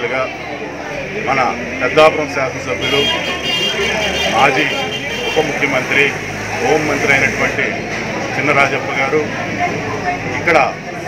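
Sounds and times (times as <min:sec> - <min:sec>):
man speaking: 0:01.2 - 0:07.7.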